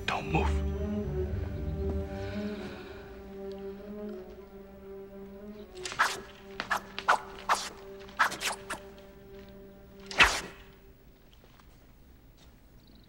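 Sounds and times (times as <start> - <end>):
orchestral low sustained notes: 0.0 - 11.1
sword swishes: 5.8 - 8.8, 10.1 - 10.7.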